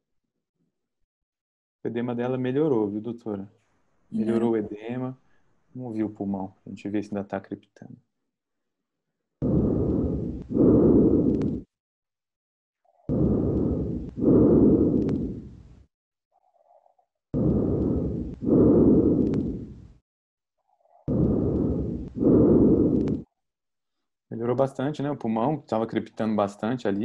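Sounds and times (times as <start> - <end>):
breathing through a stethoscope: 9.4 - 11.7, 13.1 - 15.7, 17.4 - 20.0, 21.1 - 23.3.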